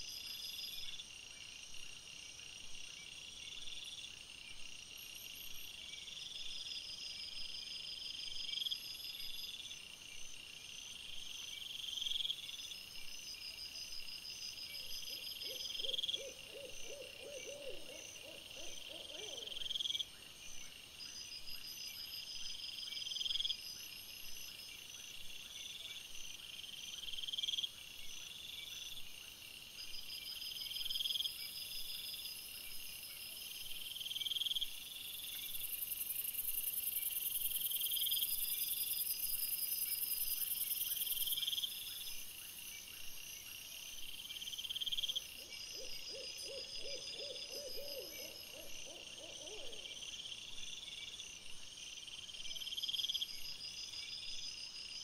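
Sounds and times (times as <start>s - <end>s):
lower quavering insect call: 0.0s - 55.0s
loud cricket chirp: 3.0s - 55.0s.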